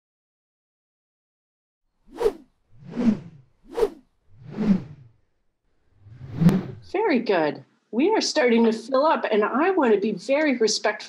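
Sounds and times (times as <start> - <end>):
whoosh sound effects: 2.1 - 5.1, 6.0 - 6.9.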